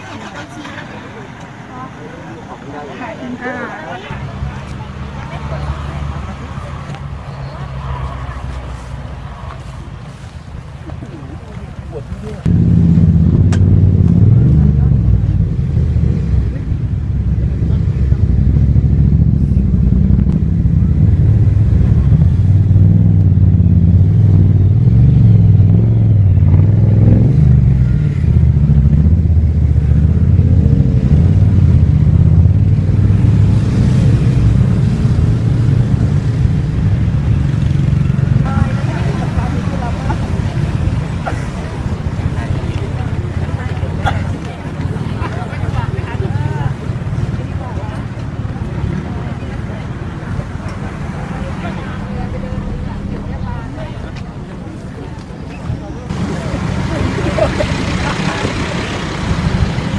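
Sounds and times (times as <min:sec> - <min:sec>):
faint voices: 0:00.0 - 0:59.9.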